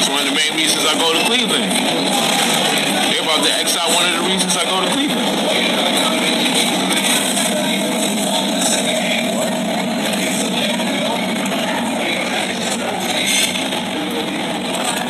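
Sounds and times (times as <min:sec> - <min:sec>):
background chatter: 0:00.0 - 0:15.0
restaurant clatter: 0:00.0 - 0:15.0.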